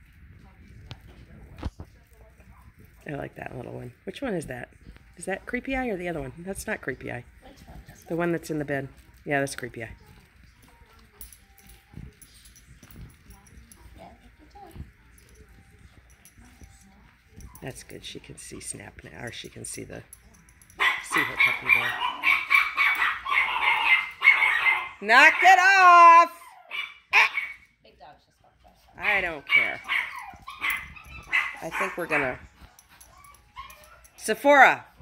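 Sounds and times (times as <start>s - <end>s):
puppies scuffling: 4.5s - 25.4s, 26.6s - 35.0s
puppy yipping: 20.8s - 25.0s, 26.4s - 27.7s, 28.6s - 34.3s
puppies whimpering: 28.9s - 34.3s.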